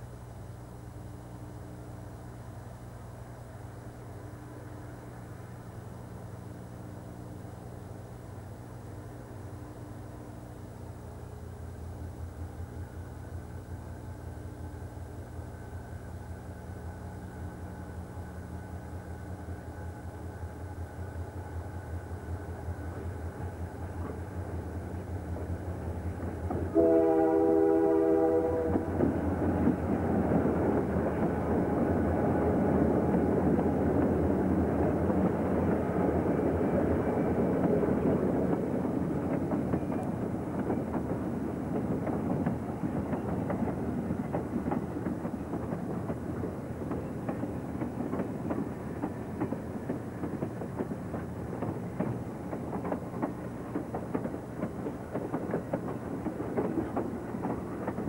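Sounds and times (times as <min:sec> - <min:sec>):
diesel locomotive engine: 0:00.0 - 0:58.0
train wheel noise: 0:00.0 - 0:58.0
train horn blast: 0:26.7 - 0:28.9.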